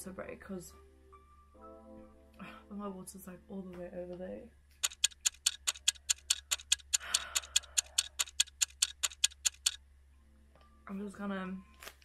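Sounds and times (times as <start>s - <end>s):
clock ticking: 4.8s - 9.8s.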